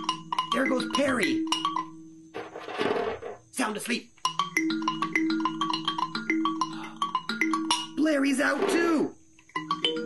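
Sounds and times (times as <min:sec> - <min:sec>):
kalimba notes: 0:00.0 - 0:02.0, 0:04.2 - 0:10.0.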